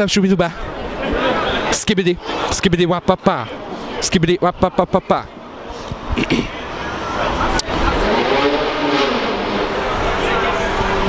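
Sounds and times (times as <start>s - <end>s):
traffic noise: 0.0s - 11.0s
car engine accelerating: 6.5s - 11.0s.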